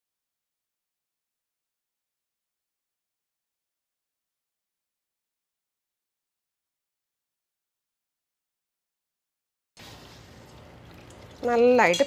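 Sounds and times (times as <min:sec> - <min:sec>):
liquid trickling through a strainer: 0:09.8 - 0:12.0.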